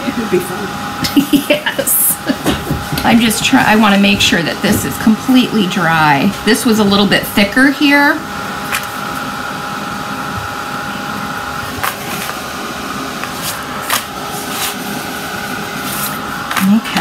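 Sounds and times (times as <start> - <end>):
hot-air dryer blowing: 0.0 - 17.0.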